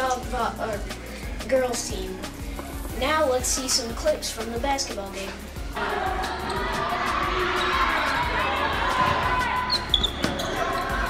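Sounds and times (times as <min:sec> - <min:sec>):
crowd chatter: 0:05.7 - 0:11.0.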